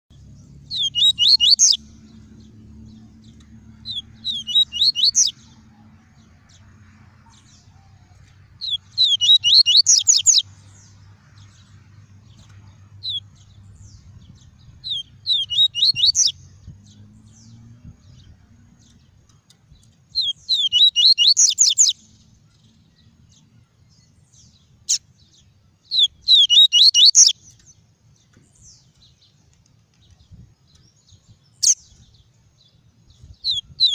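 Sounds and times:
bird singing high rising notes: 0.1s - 19.2s, 19.8s - 27.8s, 30.3s - 33.9s.

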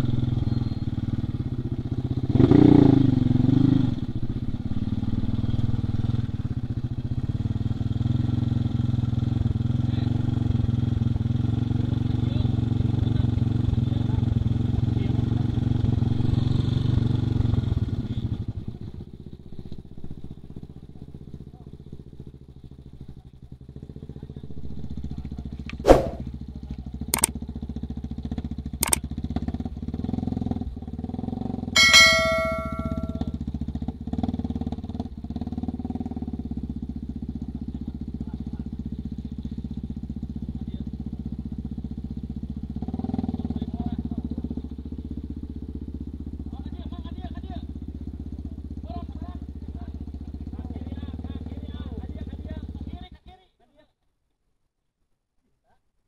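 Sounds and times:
motorcycles idling: 4.0s - 53.1s
sharp clicks: 28.8s - 29.0s
brief high tone: 31.8s - 33.3s.

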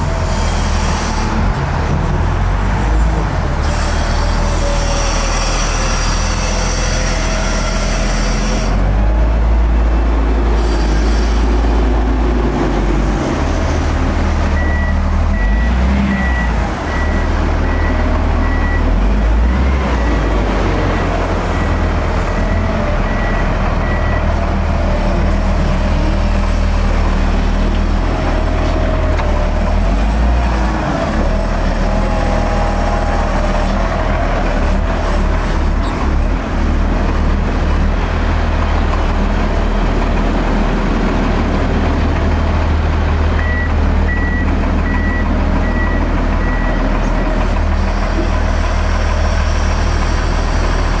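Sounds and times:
diesel engine running: 0.0s - 51.0s
reversing alarm beeps: 14.6s - 20.3s, 20.9s - 24.3s, 43.4s - 46.9s.

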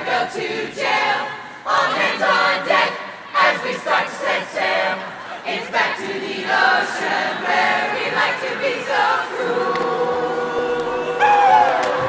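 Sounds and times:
choir singing a cappella: 0.0s - 12.0s.

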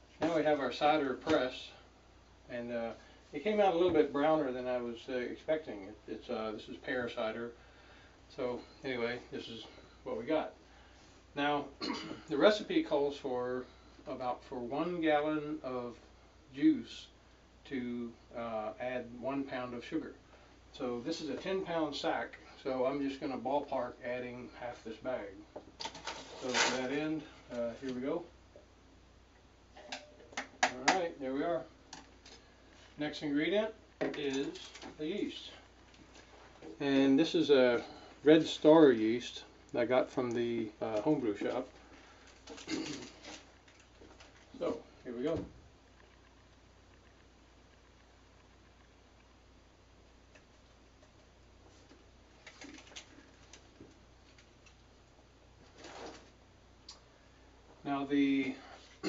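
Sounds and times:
faint room hum: 0.0s - 59.0s
packet rustling and clicking: 52.4s - 54.8s.

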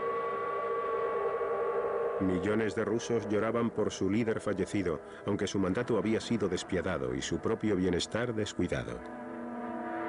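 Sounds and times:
sirens sounding steady chord: 0.0s - 10.0s.

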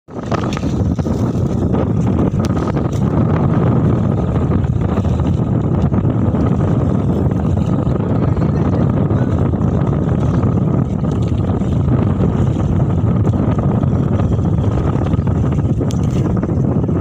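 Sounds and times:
wind buffeting microphone: 0.1s - 17.0s.

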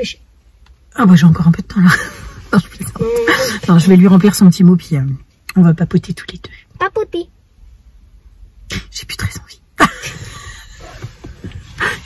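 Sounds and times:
woman laughing softly: 1.9s - 3.7s, 9.8s - 12.0s.

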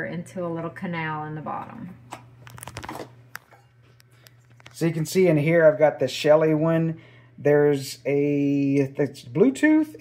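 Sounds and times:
plastic clicks and rustles: 2.1s - 4.8s.

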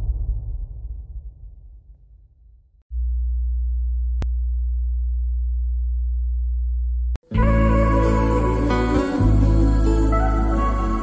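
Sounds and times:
loud low hum: 2.9s - 10.2s
music track: 7.2s - 11.0s.

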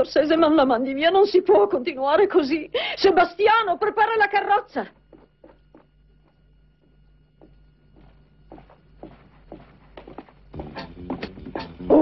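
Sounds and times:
woman's footsteps: 4.9s - 11.5s
music: 10.5s - 12.0s.

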